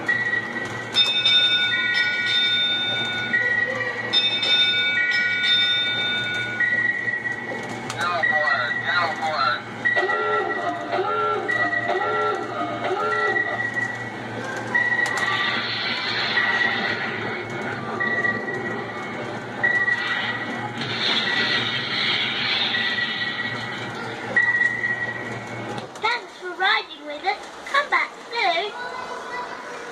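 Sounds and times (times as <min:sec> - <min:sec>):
steady low hum: 0:00.0 - 0:28.2
electronic warbling effect: 0:15.1 - 0:18.0.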